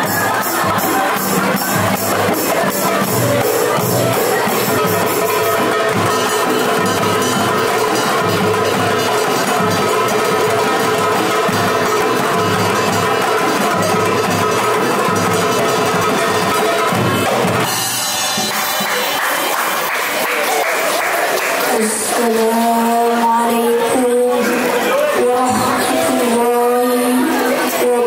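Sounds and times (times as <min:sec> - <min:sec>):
people clapping in time: 0:00.0 - 0:07.0, 0:17.6 - 0:26.4
fast hand drum rhythm: 0:00.0 - 0:28.0.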